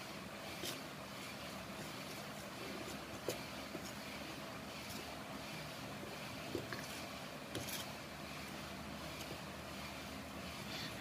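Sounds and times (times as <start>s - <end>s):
background noise: 0.0s - 11.0s.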